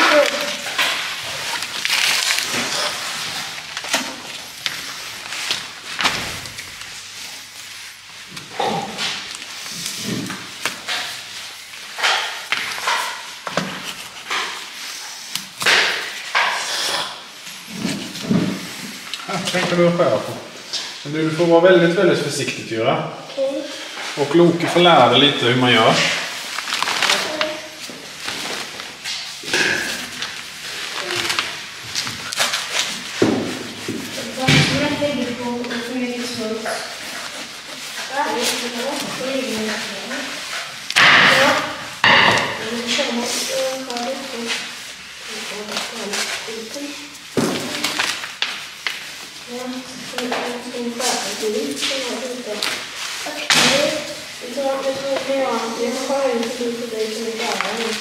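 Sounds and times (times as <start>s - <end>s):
knocks and thumps cutting carcass: 33.1s - 35.1s, 47.3s - 47.9s.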